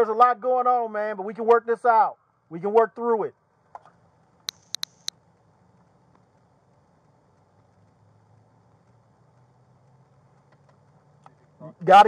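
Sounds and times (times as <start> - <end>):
faint ticks: 3.7 - 11.4.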